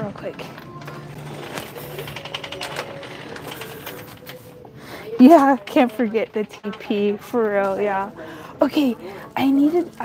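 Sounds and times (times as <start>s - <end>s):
shopping cart rattling: 0.0s - 8.1s
faint background music: 0.0s - 10.0s.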